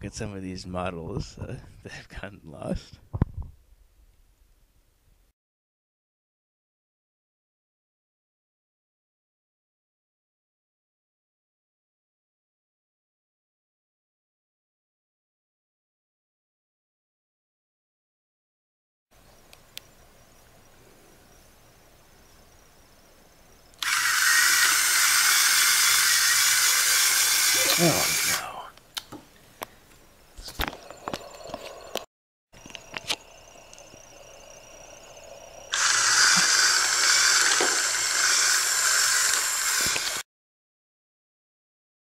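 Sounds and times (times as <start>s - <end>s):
whirr of plastic gears: 23.8s - 28.4s, 35.3s - 40.2s.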